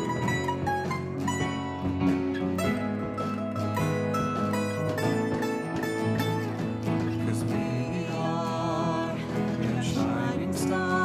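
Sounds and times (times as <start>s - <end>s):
acoustic guitars strummed: 0.0s - 11.0s
drum kit: 0.0s - 11.0s.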